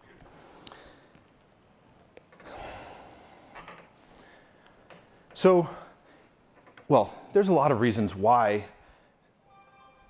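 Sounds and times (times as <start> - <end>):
man breathing in: 0.0 - 1.2, 2.4 - 4.9.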